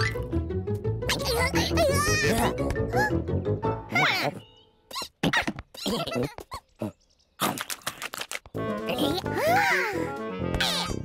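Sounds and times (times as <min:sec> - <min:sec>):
cartoon background music: 0:00.0 - 0:05.1, 0:08.5 - 0:11.0.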